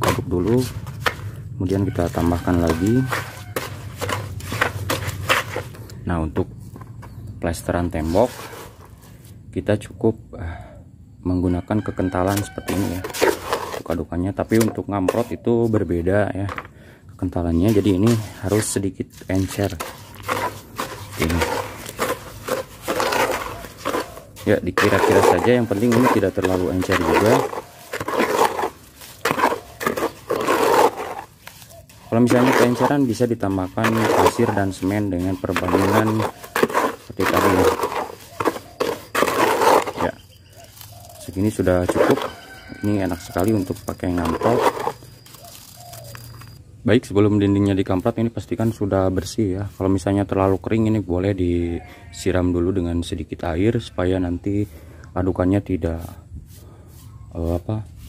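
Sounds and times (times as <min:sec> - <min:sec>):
trowel scraping mortar in bucket: 0:00.0 - 0:05.8, 0:06.7 - 0:09.4, 0:11.9 - 0:46.6, 0:47.6 - 0:50.9, 0:55.5 - 0:58.0.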